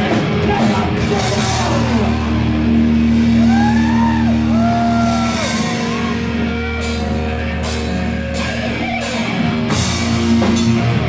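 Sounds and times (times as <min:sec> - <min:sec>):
distorted guitar and bass chord: 0:00.0 - 0:11.0.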